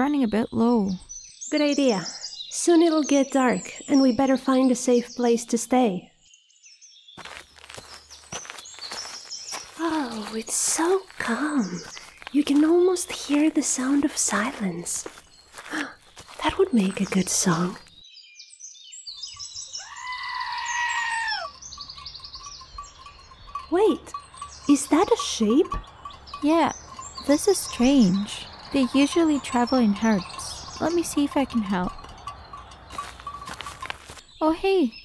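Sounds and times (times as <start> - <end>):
birds chirping: 0.0 - 35.0
soft rustles: 7.2 - 18.0, 32.9 - 34.3.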